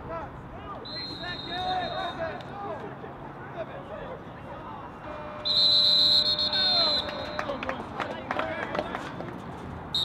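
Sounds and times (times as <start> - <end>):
referee's whistle blast: 0.8 - 2.4, 5.4 - 7.5.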